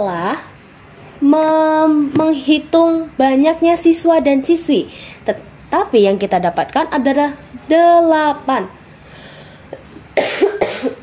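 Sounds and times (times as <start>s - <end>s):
person coughing: 9.8s - 11.0s.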